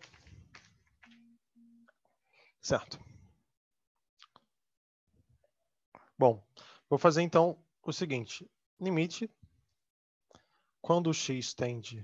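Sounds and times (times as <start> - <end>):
low electronic beeps: 1.1 - 1.9.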